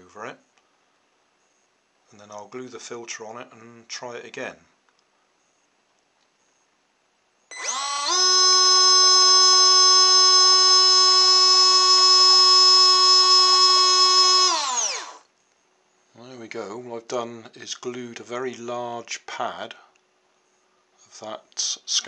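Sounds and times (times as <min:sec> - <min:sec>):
water pump motor whine: 0:07.5 - 0:15.2.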